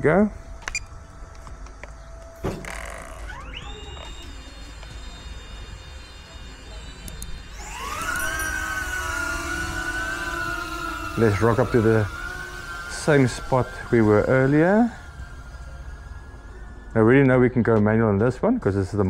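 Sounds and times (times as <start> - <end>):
drone motors whining: 0.0 - 19.0
click: 7.0 - 7.4.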